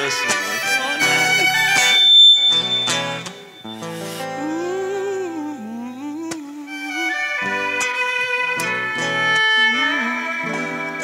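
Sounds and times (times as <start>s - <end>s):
acoustic guitars strumming: 0.0s - 11.0s
bowed violin notes: 0.0s - 11.0s.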